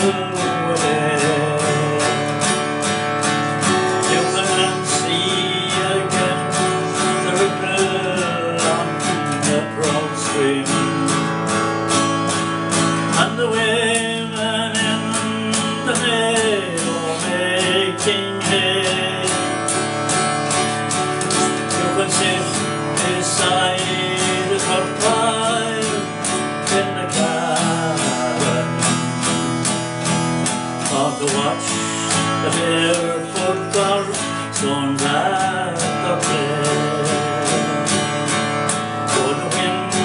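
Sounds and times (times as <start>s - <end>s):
acoustic guitar strumming: 0.0s - 40.0s.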